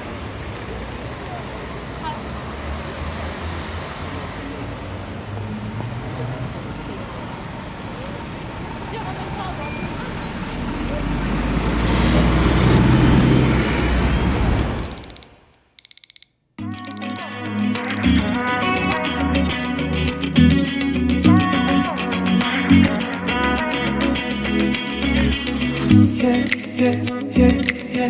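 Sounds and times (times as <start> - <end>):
bus engine rumble: 0.0 - 15.5
street traffic: 0.0 - 28.0
short electronic tones: 14.7 - 19.0
music: 16.6 - 28.0.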